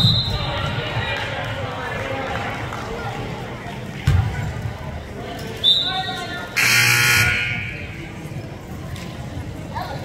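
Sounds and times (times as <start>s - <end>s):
referee's whistle: 0.0s - 0.5s, 5.6s - 8.0s
scoreboard buzzer: 6.6s - 7.8s.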